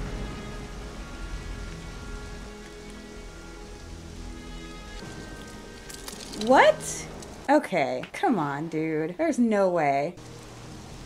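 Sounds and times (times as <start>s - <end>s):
music of long held notes: 0.0s - 7.5s
rain hissing: 0.0s - 7.7s, 10.0s - 11.0s.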